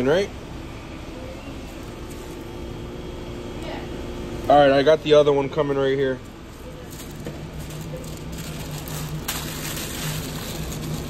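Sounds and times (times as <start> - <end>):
paper wrapper rustling: 6.6 - 11.0.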